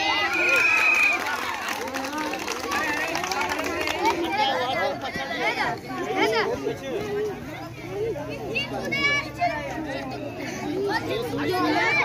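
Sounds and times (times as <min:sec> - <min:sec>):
children and people talking: 0:00.0 - 0:12.0.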